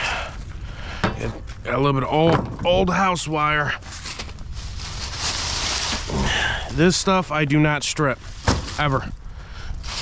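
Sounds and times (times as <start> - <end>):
dry leaves rustling: 3.5 - 10.0
wire dragged over gravel: 3.6 - 10.0.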